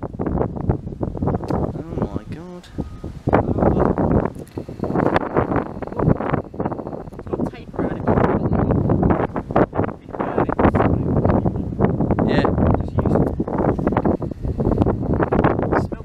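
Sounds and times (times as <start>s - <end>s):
indistinct voices: 1.5s - 16.0s.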